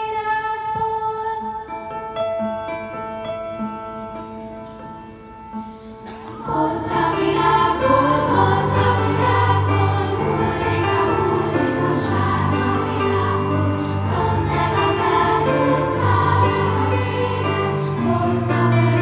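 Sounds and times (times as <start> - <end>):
grand piano: 0.0 - 19.0
children's choir singing: 6.1 - 19.0.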